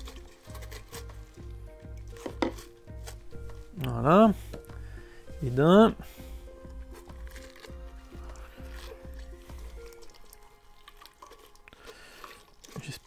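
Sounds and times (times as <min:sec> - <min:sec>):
soft background music: 0:00.0 - 0:13.0
wet cloth squishing and dripping: 0:00.0 - 0:13.0.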